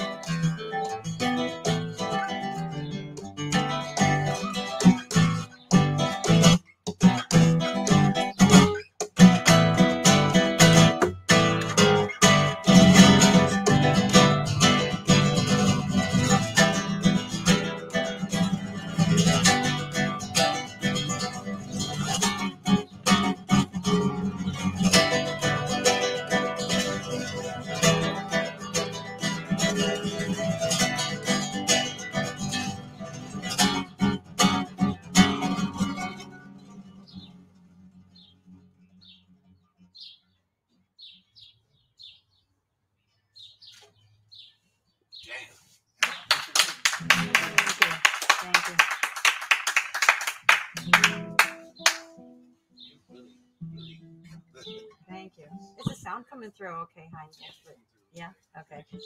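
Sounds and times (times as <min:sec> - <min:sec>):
classical guitar fingerstyle: 0:00.0 - 0:41.4, 0:47.0 - 0:48.8, 0:50.4 - 0:59.0.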